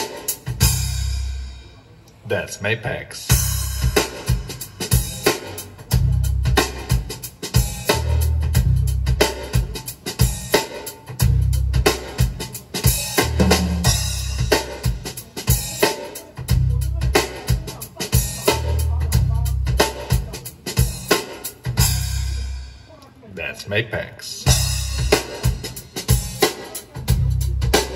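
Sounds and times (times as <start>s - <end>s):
cymbals: 24.5s - 27.9s.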